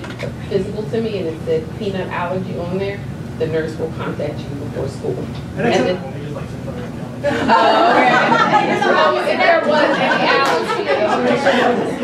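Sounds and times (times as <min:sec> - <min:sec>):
audience chatter: 0:05.6 - 0:12.0.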